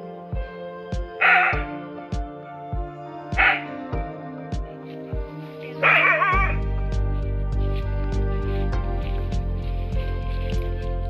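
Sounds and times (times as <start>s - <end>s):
music with thumping beat: 0.3s - 11.0s
dog barking: 3.4s - 3.7s, 5.8s - 6.6s.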